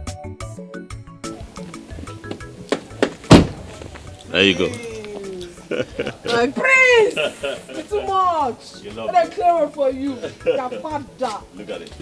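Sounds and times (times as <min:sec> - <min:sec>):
background music: 0:00.0 - 0:12.0
car door shutting: 0:01.7 - 0:04.2.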